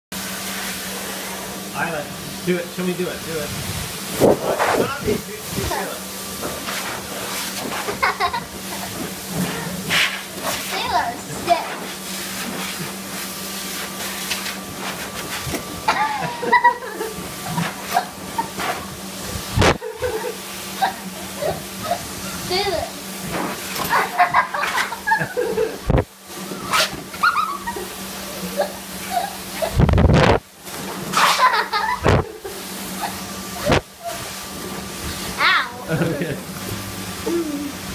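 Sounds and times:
blow dryer air rush: 0:00.2 - 0:37.9.

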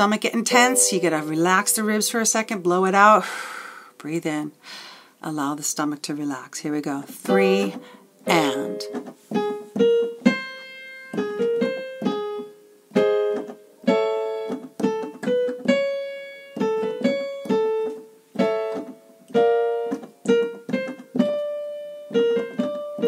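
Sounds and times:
piano playing staccato and held notes: 0:00.5 - 0:02.0, 0:07.3 - 0:23.0.

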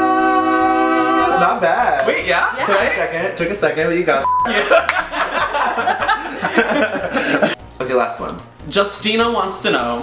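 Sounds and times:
people talking and laughing: 0:04.2 - 0:07.6.

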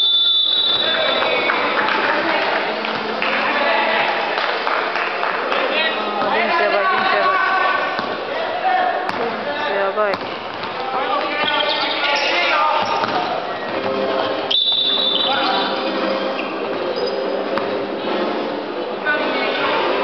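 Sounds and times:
referee's whistle: 0:00.0 - 0:01.4, 0:14.5 - 0:15.8
basketball bouncing on hardwood floor: 0:10.1 - 0:10.8.

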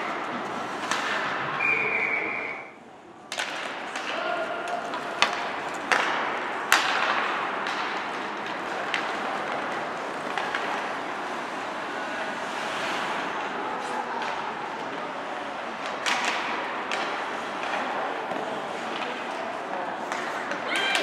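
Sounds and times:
hockey sticks and puck cracking: 0:00.0 - 0:02.4, 0:03.2 - 0:21.0
skates scraping on ice: 0:00.0 - 0:02.5, 0:03.4 - 0:21.0
spectators shouting: 0:20.5 - 0:21.0.

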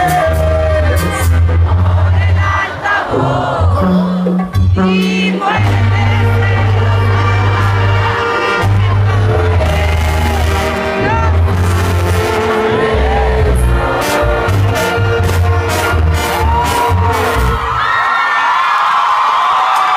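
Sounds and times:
lead singer singing: 0:00.0 - 0:11.6
tuba bass line: 0:00.0 - 0:17.7
brass band playing: 0:00.0 - 0:17.9.

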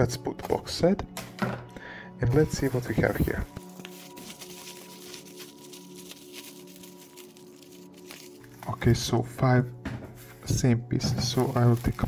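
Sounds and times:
soft background music: 0:00.0 - 0:12.0
bubble wrap crinkling: 0:02.4 - 0:08.8, 0:11.2 - 0:12.0.

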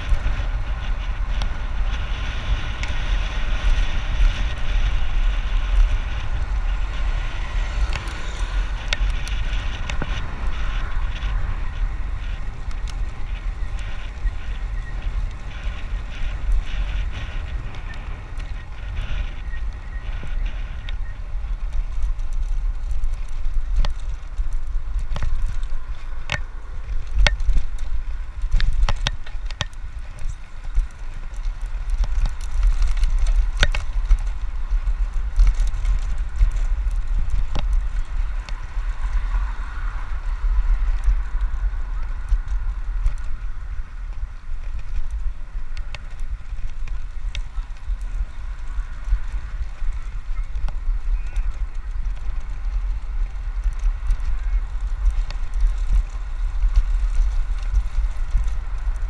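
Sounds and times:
bicycle tyre noise: 0:00.0 - 0:59.0
bike clicks and knocks over bumps: 0:00.0 - 0:59.0
wind buffeting microphone: 0:00.0 - 0:59.0.

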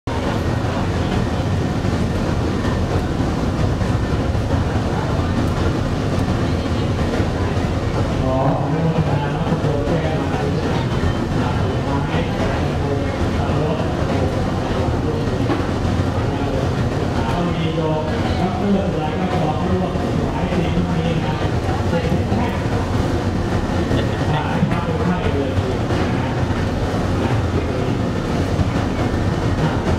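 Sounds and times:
faint voices: 0:00.1 - 0:29.9
furnace burners rumbling: 0:00.1 - 0:29.9.

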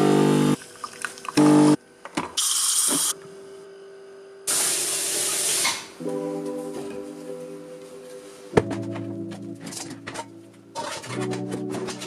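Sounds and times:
espresso machine pump buzzing: 0:00.0 - 0:01.8
espresso machine hissing: 0:02.4 - 0:03.1, 0:04.5 - 0:05.9.

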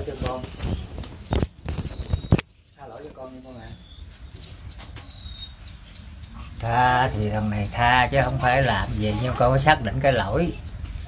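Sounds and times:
bird whistling thin notes: 0:00.6 - 0:02.4, 0:03.6 - 0:06.0.

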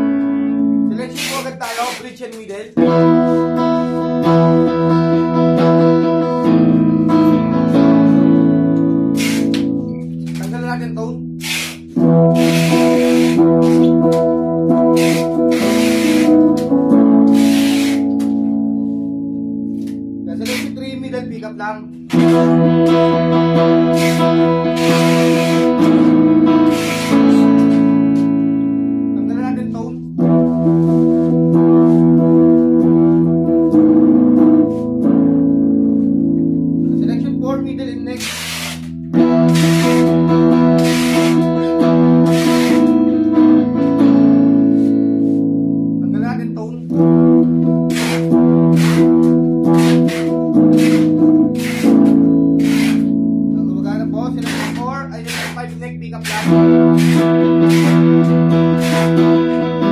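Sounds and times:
electric guitar chords strummed: 0:00.0 - 0:59.9.

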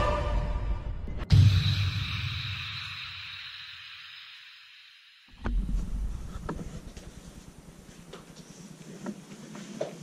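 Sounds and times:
low rumbling handling noise: 0:05.3 - 0:08.4.

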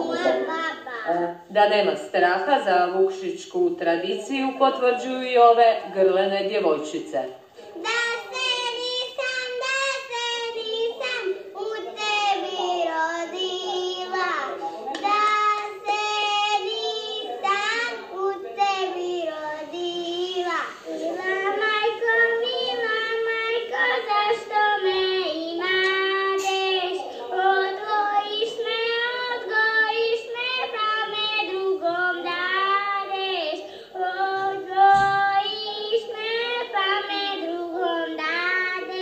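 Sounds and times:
girls singing unaccompanied: 0:00.0 - 0:01.3, 0:07.5 - 0:39.0.

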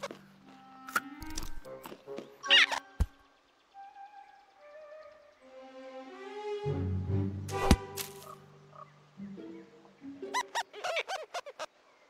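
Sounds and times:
orchestral score: 0:03.7 - 0:10.4.

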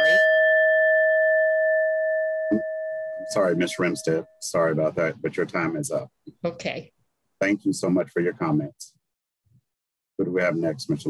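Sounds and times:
bell-like chime ringing: 0:00.0 - 0:04.4.

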